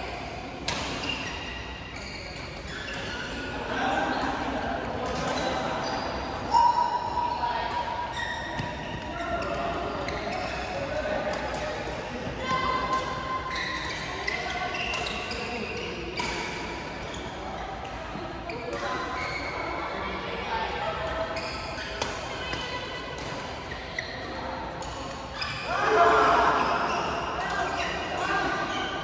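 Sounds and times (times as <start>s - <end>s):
shoes squeaking on court: 1.0s - 3.4s, 8.1s - 10.7s, 13.5s - 16.4s, 21.3s - 25.7s
players' voices: 2.0s - 29.0s.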